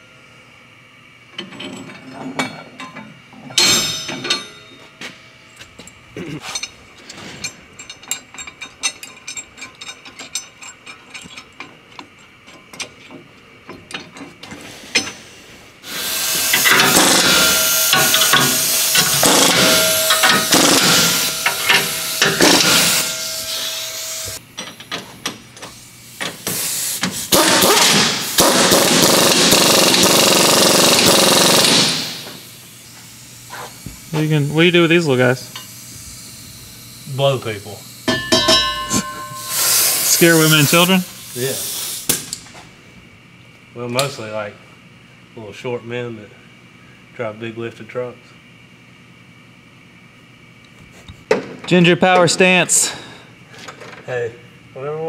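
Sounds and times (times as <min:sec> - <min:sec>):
metal clinks and clicks: 0:07.4 - 0:12.9
pneumatic impact wrench running: 0:14.6 - 0:42.4.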